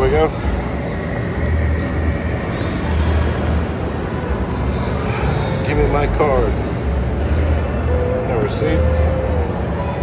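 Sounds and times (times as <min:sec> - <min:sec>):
din of busy arcade: 0:00.0 - 0:10.0.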